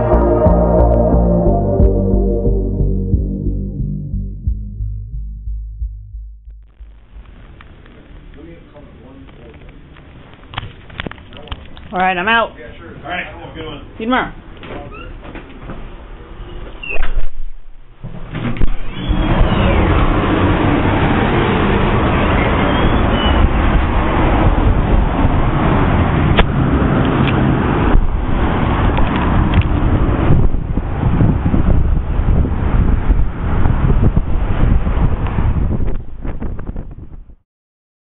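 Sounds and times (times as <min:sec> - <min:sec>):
city street traffic: 0:06.7 - 0:37.2.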